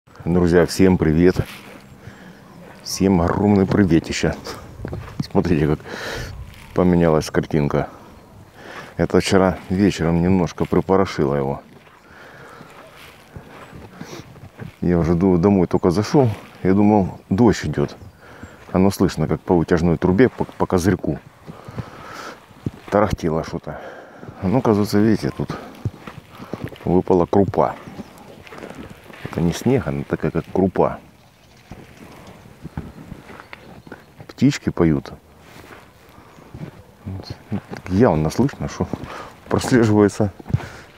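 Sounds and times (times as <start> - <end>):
footsteps crunching on snow pellets: 0.1 - 40.9.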